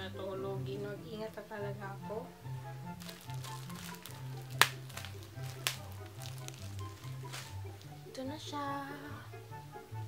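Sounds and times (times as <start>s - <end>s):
soft background music: 0.0s - 10.0s
plastic wrapping crinkling: 2.9s - 8.0s
plastic snapping: 3.0s - 8.0s.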